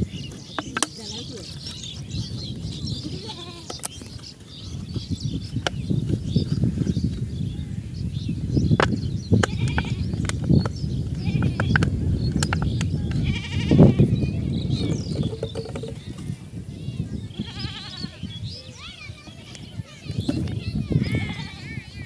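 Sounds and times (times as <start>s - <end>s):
wind rumble on microphone: 0.0s - 22.0s
livestock bleating: 3.0s - 3.7s, 13.2s - 14.1s, 17.3s - 18.2s.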